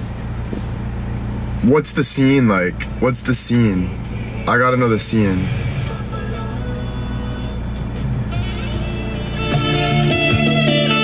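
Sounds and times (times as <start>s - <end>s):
engine and road rumble: 0.0s - 11.0s
car radio playing music: 3.2s - 11.0s.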